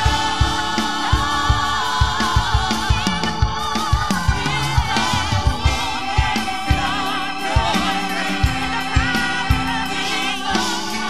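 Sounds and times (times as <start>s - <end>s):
accompaniment with steady beat: 0.0s - 11.0s
women singing gospel song: 0.0s - 11.0s.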